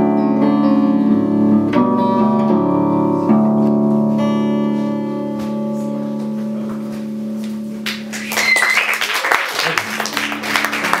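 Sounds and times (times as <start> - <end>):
acoustic guitar chord ringing: 0.0 - 7.8
audience applause: 7.9 - 11.0
high cheer: 8.1 - 11.0.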